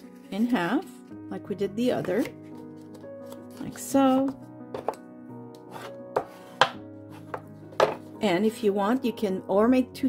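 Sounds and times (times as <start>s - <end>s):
soft background music: 0.0s - 10.0s
card tapping on wooden tabletop: 4.2s - 8.1s.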